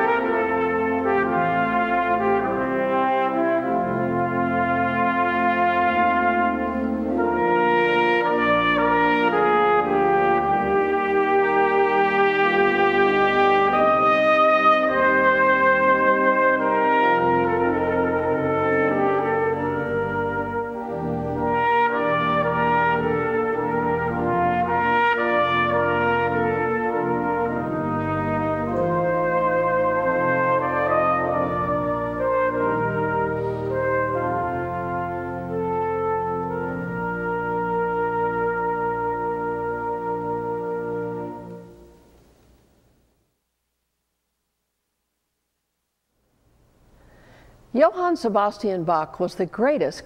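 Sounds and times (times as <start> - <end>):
pipe organ chords: 0.0 - 42.3
trumpet melody: 0.0 - 42.4.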